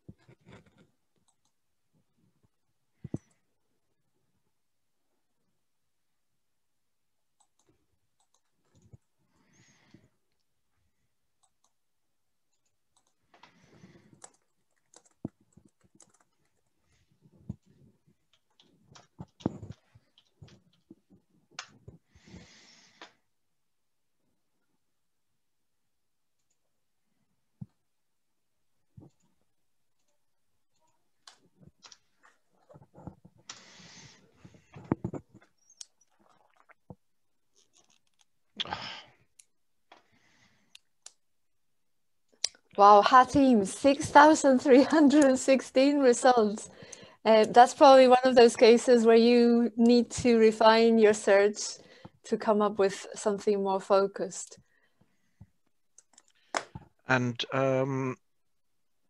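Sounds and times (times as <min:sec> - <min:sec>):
keyboard and mouse clicks: 0:00.2 - 0:01.6, 0:07.4 - 0:09.0, 0:11.4 - 0:11.8, 0:12.5 - 0:13.5, 0:14.1 - 0:16.7, 0:17.5 - 0:22.0.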